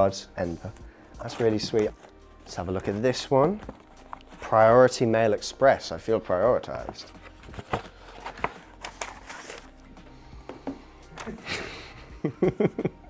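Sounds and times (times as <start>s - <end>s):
quiet background music: 0.0s - 13.0s
paper rustling and crinkling: 1.3s - 4.6s, 6.8s - 9.8s.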